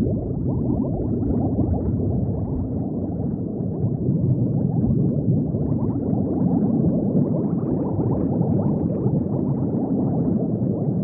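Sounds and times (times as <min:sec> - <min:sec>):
deep underwater rumble: 0:00.0 - 0:11.0
underwater bubbles: 0:00.0 - 0:11.0.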